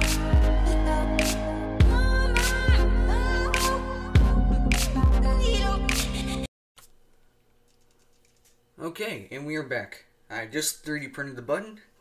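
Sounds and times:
man speaking: 8.8s - 11.9s.

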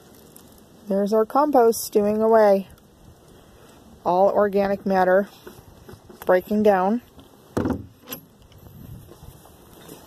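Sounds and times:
wooden lid thump: 7.6s - 8.0s.

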